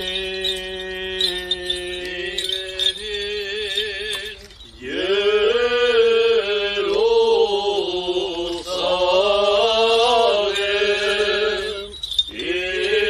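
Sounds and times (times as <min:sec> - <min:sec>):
clergy chanting a hymn: 0:00.0 - 0:13.0.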